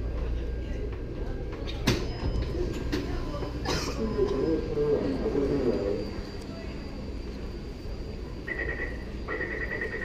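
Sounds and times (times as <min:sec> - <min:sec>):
metro station hum: 0:00.0 - 0:10.0.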